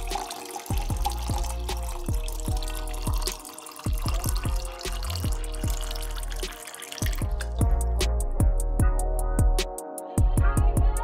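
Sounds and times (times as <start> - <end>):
juice pouring into glass: 0.0 - 7.6
music with deep bass drums: 0.0 - 11.0.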